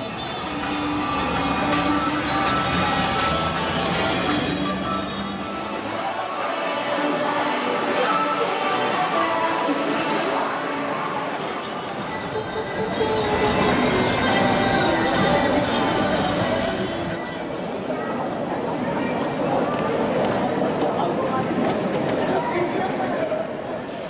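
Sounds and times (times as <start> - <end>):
pop music over loudspeakers: 0.0 - 17.8.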